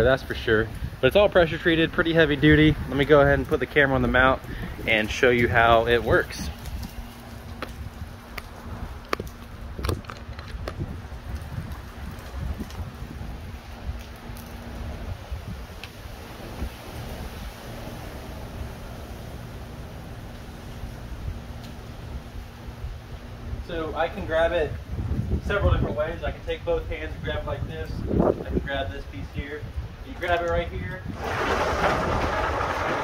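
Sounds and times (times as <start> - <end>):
wind rumbling on microphone: 0.0 - 33.0.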